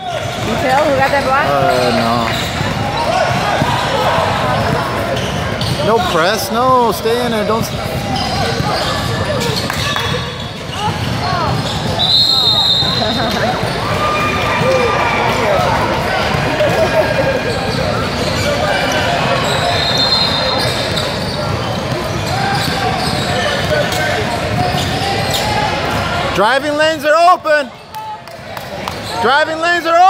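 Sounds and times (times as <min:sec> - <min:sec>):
voices calling out: 0:00.0 - 0:26.2
short high squeals: 0:17.6 - 0:23.6.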